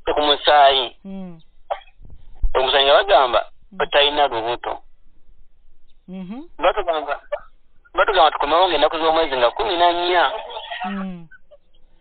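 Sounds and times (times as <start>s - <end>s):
person talking over telephone: 0.0s - 1.4s, 2.5s - 4.8s, 6.2s - 11.4s.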